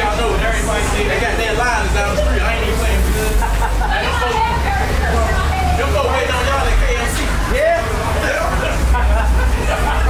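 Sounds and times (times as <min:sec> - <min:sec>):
indistinct voices: 0:00.0 - 0:10.0.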